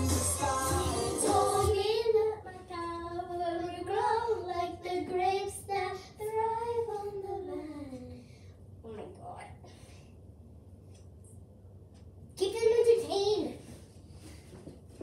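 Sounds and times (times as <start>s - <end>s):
young girl singing: 0.0s - 8.3s.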